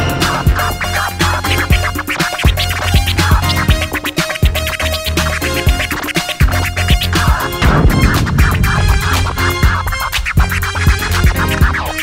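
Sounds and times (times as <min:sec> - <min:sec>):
vinyl record scratching: 0:00.3 - 0:12.0
bass-heavy drum beat: 0:01.5 - 0:12.0.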